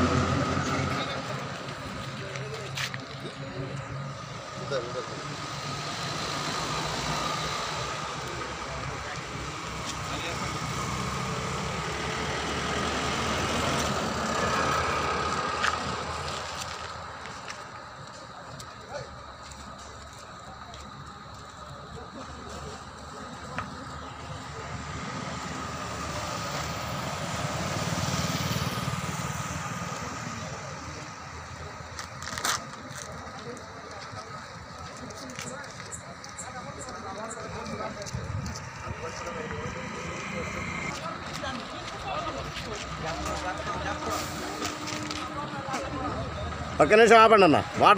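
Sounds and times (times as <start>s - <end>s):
highway traffic passing: 0.0s - 47.9s
indistinct voices: 0.0s - 47.9s.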